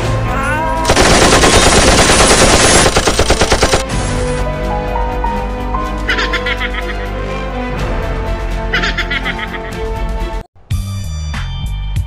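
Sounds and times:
machine-gun fire: 0.9 - 4.3.

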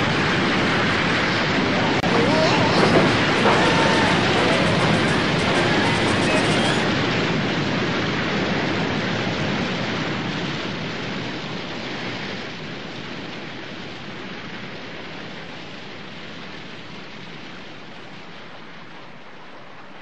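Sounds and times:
waterfall rushing into a pool: 0.0 - 19.8.

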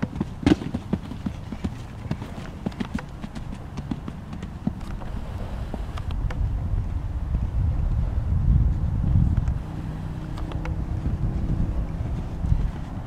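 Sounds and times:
horse hoofbeats on sand: 0.0 - 13.0.

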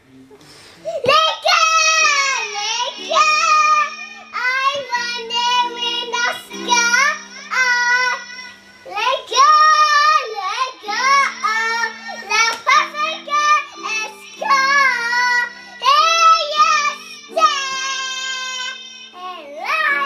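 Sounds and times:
girl singing into microphone: 0.6 - 20.0.

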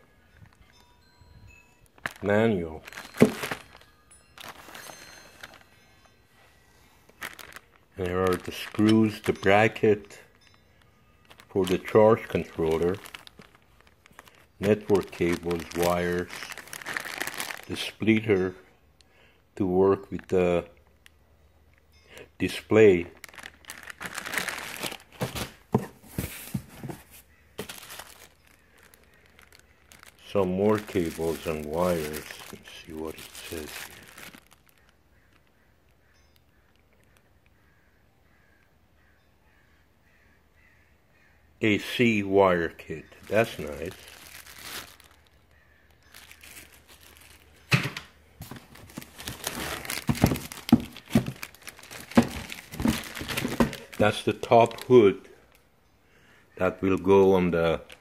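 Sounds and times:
plastic bags crinkling: 0.2 - 6.2, 6.9 - 18.5, 22.4 - 35.6, 42.8 - 55.5, 56.7 - 58.0.

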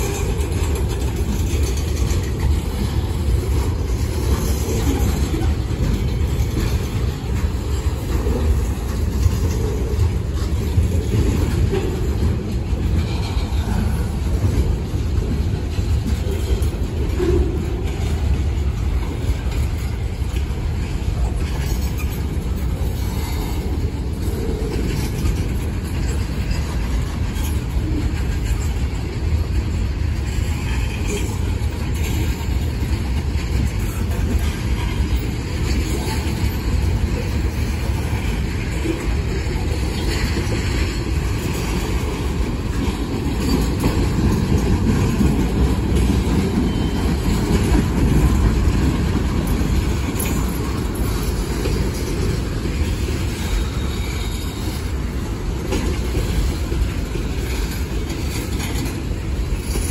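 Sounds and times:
freight train wheels rumbling: 0.0 - 59.9.

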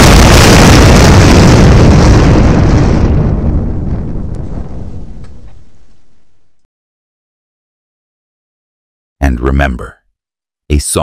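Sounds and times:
explosion blast: 0.0 - 6.6.

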